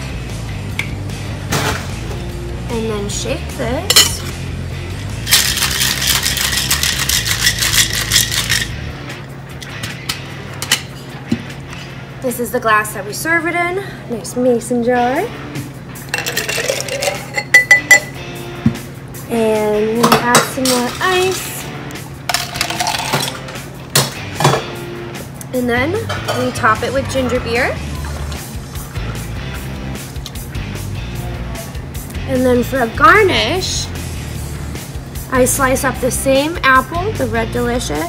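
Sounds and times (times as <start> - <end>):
background music: 0.0 - 38.0
ice rattling in cocktail shaker: 5.2 - 8.8, 16.1 - 18.0, 22.3 - 23.5
shaker handling clicks: 5.3 - 8.7.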